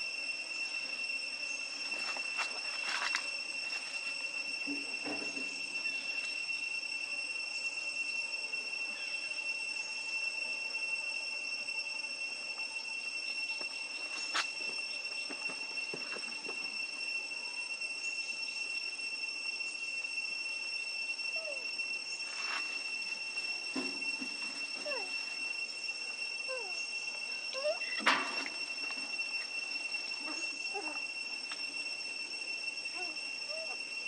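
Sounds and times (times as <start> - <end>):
insects droning: 0.0 - 34.0.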